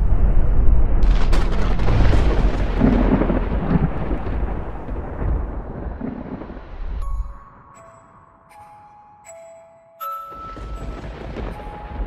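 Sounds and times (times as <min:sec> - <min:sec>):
rolling thunder: 0:00.0 - 0:07.2, 0:10.6 - 0:12.0.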